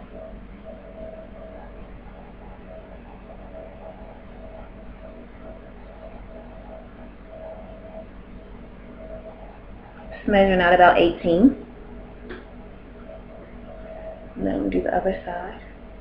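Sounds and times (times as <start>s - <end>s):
faint wavering hum: 0.0s - 16.0s.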